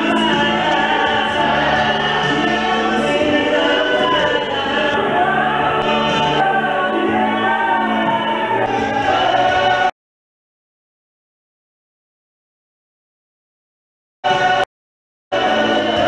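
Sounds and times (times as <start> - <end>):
lead singer into microphone: 0.0 - 9.9
voices singing along: 0.0 - 9.9, 14.3 - 14.7, 15.3 - 16.0.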